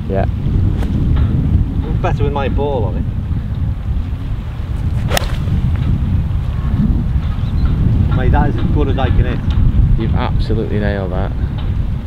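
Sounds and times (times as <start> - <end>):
wind buffeting microphone: 0.0 - 12.0
golf club swish: 4.8 - 5.8.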